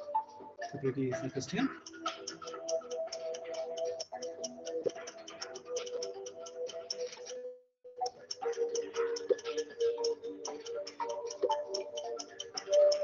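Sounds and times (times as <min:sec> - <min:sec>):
countdown music with ticking beat: 0:00.0 - 0:13.0.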